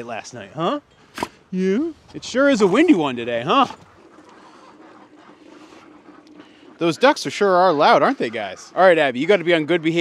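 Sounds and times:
ducks chattering: 0.0s - 10.0s.

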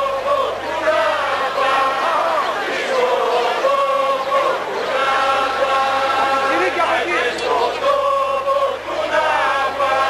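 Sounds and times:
group singing unaccompanied: 0.0s - 10.0s.

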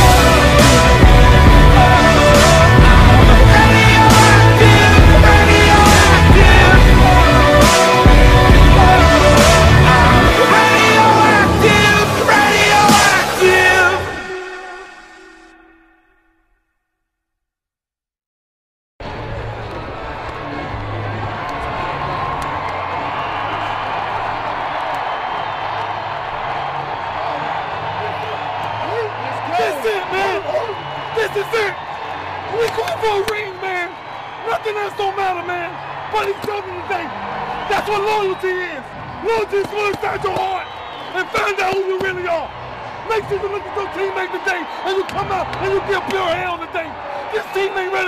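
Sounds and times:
low bass notes: 0.0s - 14.0s
men shouting: 0.0s - 14.5s.

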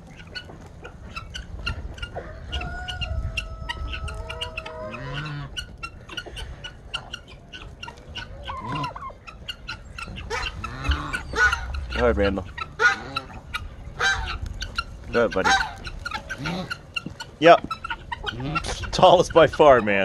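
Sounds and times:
chickens clucking: 0.0s - 20.0s
turkey long held call: 2.0s - 14.8s.

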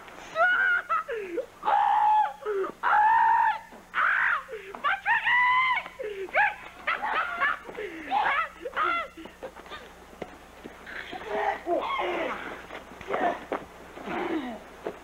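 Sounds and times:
person screaming: 0.4s - 9.3s.

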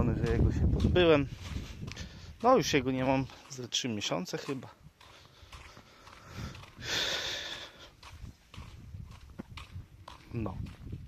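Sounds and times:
breathy sniff or exhale: 5.2s - 7.9s.

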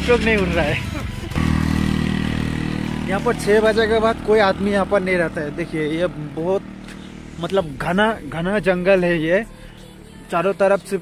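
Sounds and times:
motor scooter engine under load: 0.0s - 11.0s.

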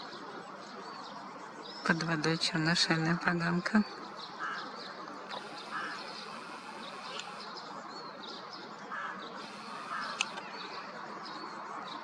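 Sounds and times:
outdoor hush: 1.8s - 12.0s
ducks quacking: 5.3s - 7.4s, 9.0s - 10.4s
high bird chirps: 5.3s - 7.6s, 9.3s - 10.8s.

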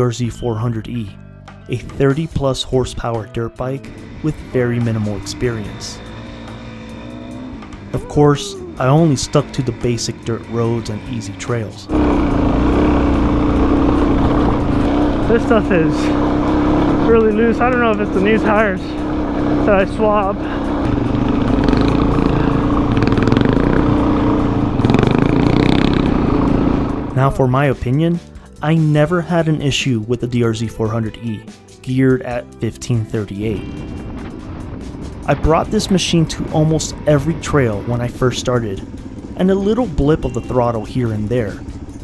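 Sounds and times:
background music: 0.0s - 42.0s
dirt bike engine running: 3.8s - 29.4s, 33.0s - 42.0s.

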